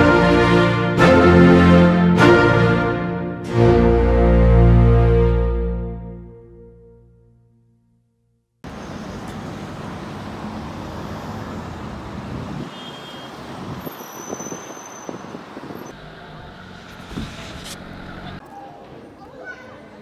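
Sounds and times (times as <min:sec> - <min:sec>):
road vehicles rumbling: 0:08.6 - 0:19.1
thin high squeals: 0:13.9 - 0:15.9.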